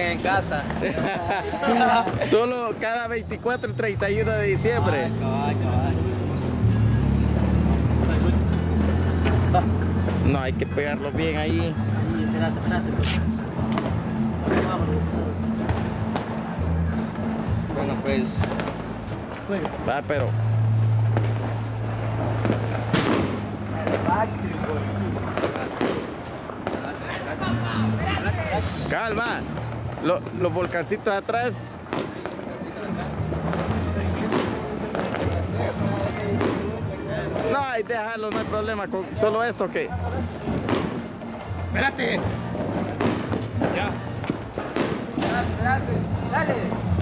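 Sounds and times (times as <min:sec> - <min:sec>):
fireworks crackling hiss: 0:00.0 - 0:11.5, 0:12.5 - 0:47.0
background music with bass line: 0:00.0 - 0:26.0
masking tape ripping off roll: 0:13.0 - 0:13.3.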